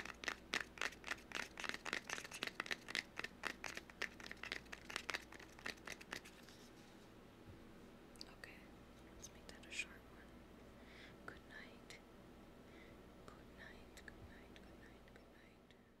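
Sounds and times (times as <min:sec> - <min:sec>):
person whispering: 0:08.2 - 0:10.3, 0:11.3 - 0:12.0, 0:13.3 - 0:15.7.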